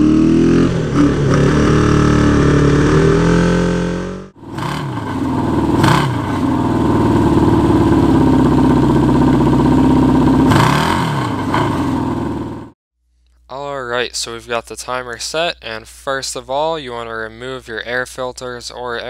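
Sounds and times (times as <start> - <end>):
motorcycle engine revving: 0.0 - 12.8
motorcycle engine running steadily: 0.0 - 12.8.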